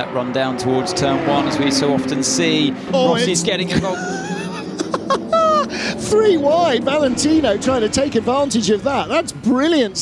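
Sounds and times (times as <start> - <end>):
race cars droning: 0.0 - 10.0
man exclaiming excitedly: 3.0 - 4.5
man laughing: 3.0 - 6.2.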